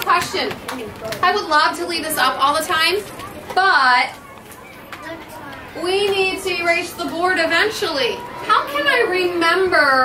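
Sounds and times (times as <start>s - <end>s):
children chattering: 0.0s - 10.0s
teacher talking: 0.0s - 10.0s.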